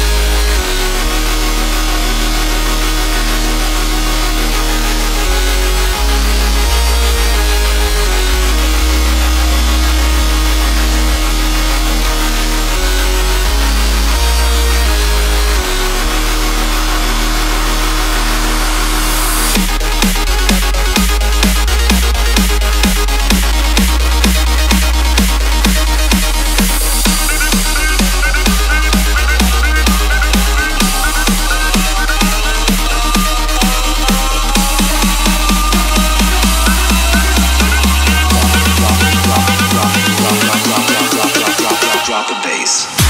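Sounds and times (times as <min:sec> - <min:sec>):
held synth bass notes: 0:00.0 - 0:42.2
electro house music: 0:00.0 - 0:43.0
layered synth chords: 0:00.0 - 0:43.0.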